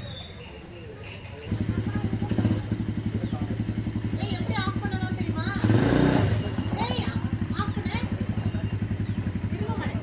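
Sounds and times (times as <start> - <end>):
atv engine idling: 0.9 - 10.0.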